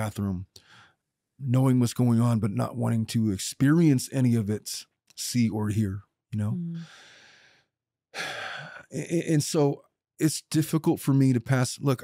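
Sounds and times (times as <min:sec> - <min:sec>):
man sighing breath: 0:06.7 - 0:07.6, 0:08.2 - 0:08.9.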